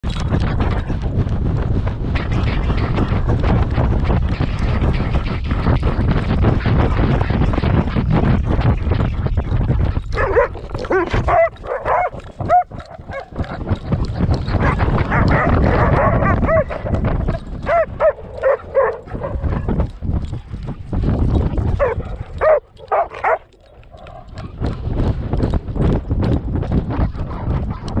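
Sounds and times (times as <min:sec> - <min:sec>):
dog paws thudding on sand: 0:00.0 - 0:27.2
wind rush on microphone: 0:00.0 - 0:28.0
dogs yipping: 0:10.0 - 0:19.9, 0:21.7 - 0:24.5.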